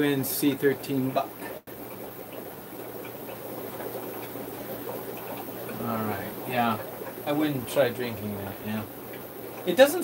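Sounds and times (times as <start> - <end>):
aquarium aeration bubbling: 0.0 - 10.0.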